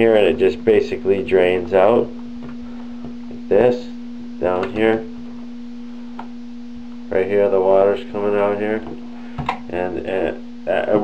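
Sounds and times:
steady low-pitched hum: 0.0 - 11.0.

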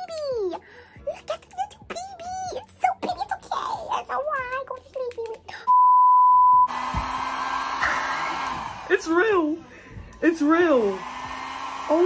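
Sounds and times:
high steady beep: 5.7 - 6.7
hair dryer whirring: 6.7 - 12.0.

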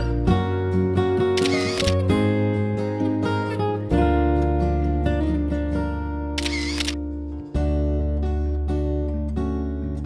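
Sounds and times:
strummed acoustic guitar music: 0.0 - 6.4
camera shutter sound effect: 1.4 - 2.1, 6.4 - 7.0.

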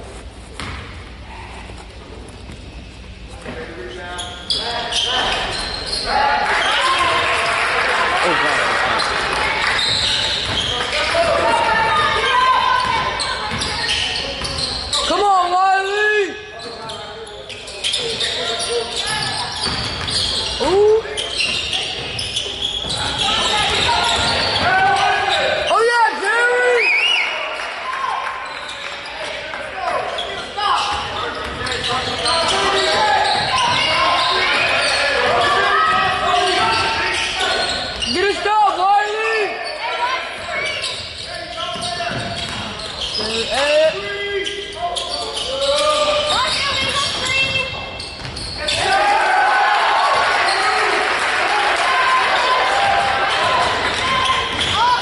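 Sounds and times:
sneakers squeaking: 0.0 - 7.7, 8.5 - 51.1, 52.3 - 55.0.

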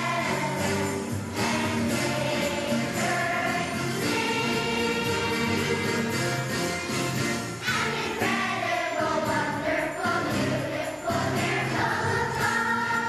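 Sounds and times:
children's choir singing: 0.0 - 6.6, 7.5 - 13.0
musical accompaniment: 0.0 - 13.0.

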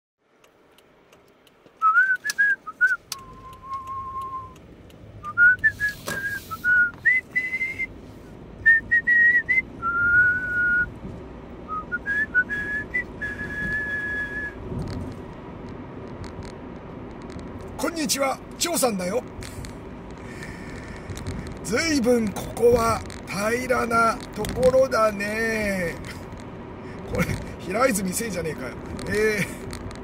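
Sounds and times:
car cabin road noise: 0.2 - 30.0
sharp clicks: 0.4 - 6.3, 14.8 - 17.8, 19.2 - 21.7, 22.3 - 25.0
person whistling a tune: 1.8 - 4.6, 5.2 - 7.9, 8.6 - 10.9, 11.7 - 14.6.

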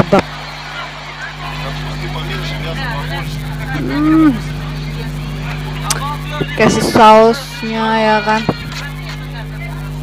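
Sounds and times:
indistinct voices: 0.0 - 10.0
steady low hum: 0.0 - 10.0.

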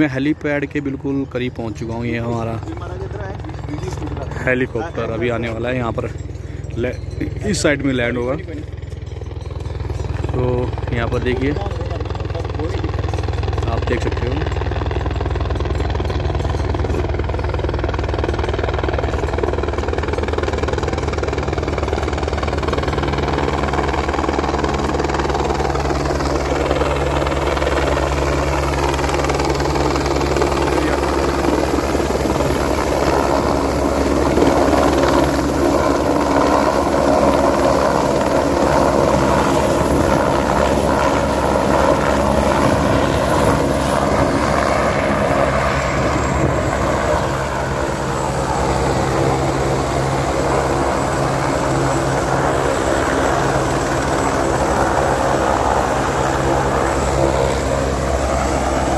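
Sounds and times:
helicopter rotor and turbine: 0.0 - 58.9.

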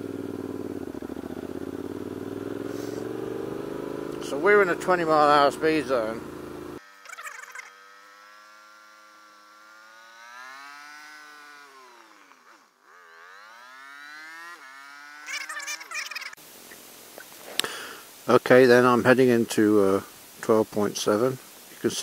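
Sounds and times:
motorcycle engine running: 0.0 - 16.4.

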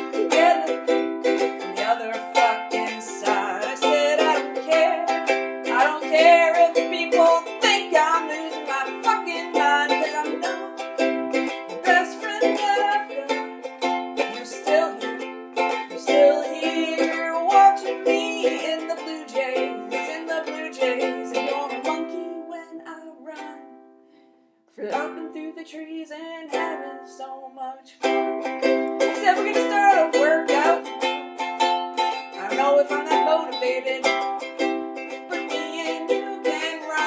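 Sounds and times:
person singing: 0.0 - 23.8, 24.7 - 37.0
ukulele strumming: 0.0 - 24.0, 24.8 - 37.0.

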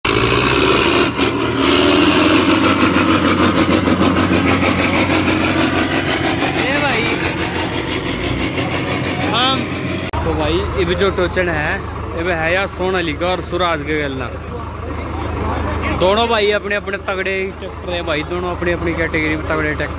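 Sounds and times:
diesel tractor engine running: 0.0 - 19.9.

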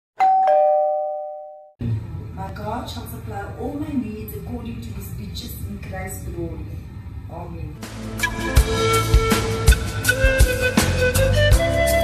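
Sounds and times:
two-note ding-dong chime: 0.2 - 1.7.

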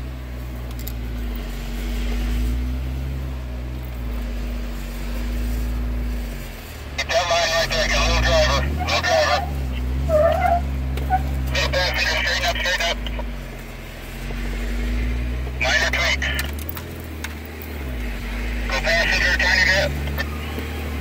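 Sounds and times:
engine working under load: 0.0 - 21.0.

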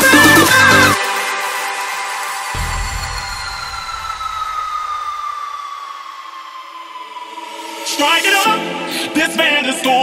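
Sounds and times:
bass: 0.0 - 1.0, 2.6 - 5.1
synth tone gliding down: 2.6 - 6.6.

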